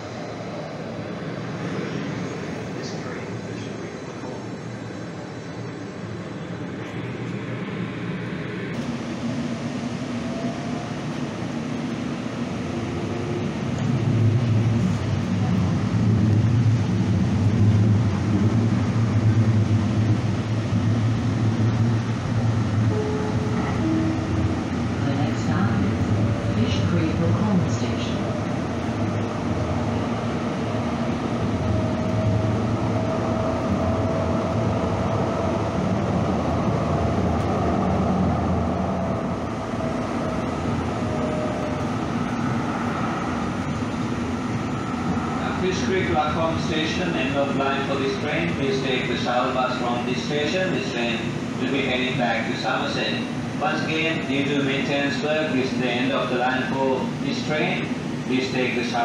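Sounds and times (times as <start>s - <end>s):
train motor hum: 8.8s - 58.9s
two-note tone: 22.9s - 24.7s.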